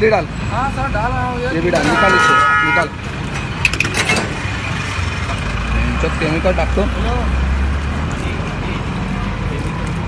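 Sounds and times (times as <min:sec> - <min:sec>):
distant traffic: 0:00.0 - 0:10.0.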